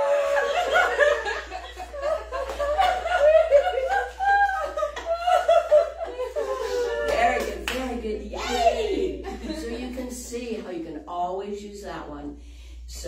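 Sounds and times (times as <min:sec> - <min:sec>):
women laughing: 0:00.0 - 0:07.4
hand claps: 0:02.3 - 0:03.1, 0:07.0 - 0:08.0.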